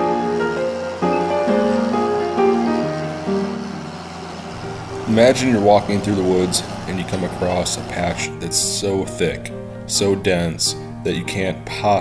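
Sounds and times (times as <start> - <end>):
slow instrumental melody: 0.0 - 11.8.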